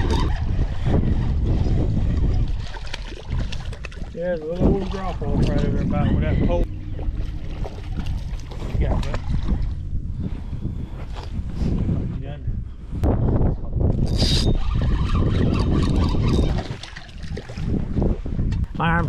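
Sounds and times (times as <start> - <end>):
water splashing: 0.0 - 5.8, 6.7 - 9.9, 14.5 - 18.0
wind buffeting microphone: 0.0 - 19.0
fishing reel reeling in: 14.0 - 17.2.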